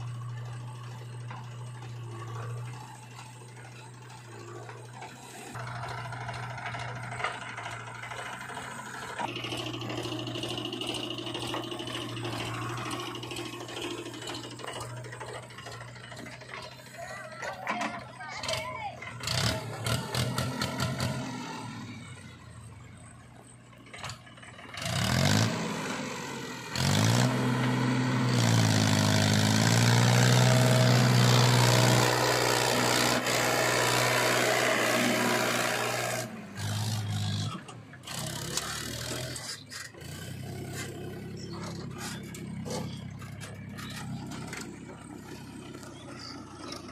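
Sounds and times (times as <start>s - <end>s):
engine revving under load: 0.0s - 23.1s, 23.9s - 46.9s
diesel engines running: 0.0s - 46.9s.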